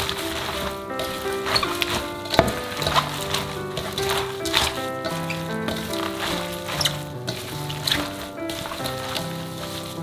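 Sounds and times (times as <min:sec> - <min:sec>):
cabbage crunching in metal bowl: 0:00.0 - 0:10.0
music with held notes: 0:00.0 - 0:10.0.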